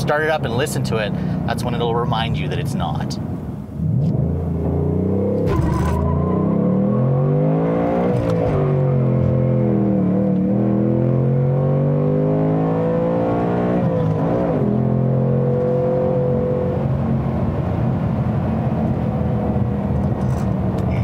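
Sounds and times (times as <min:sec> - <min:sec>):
car engine revving: 0:03.7 - 0:21.0.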